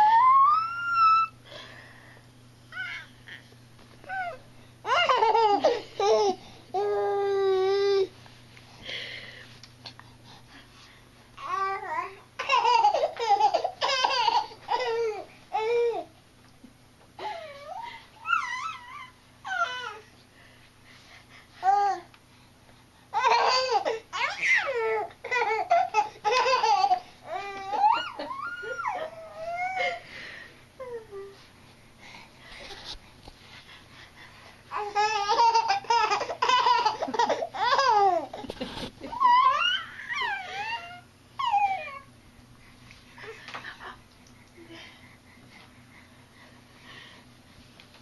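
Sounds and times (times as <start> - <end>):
baby squealing and cooing: 0.0 - 1.4, 18.2 - 20.0, 39.1 - 42.1
baby laughing: 4.9 - 6.4, 12.4 - 15.2, 23.2 - 30.0, 34.7 - 41.8.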